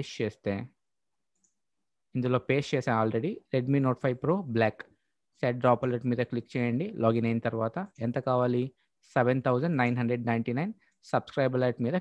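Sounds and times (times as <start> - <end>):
man speaking: 0.0 - 0.8, 2.1 - 12.0.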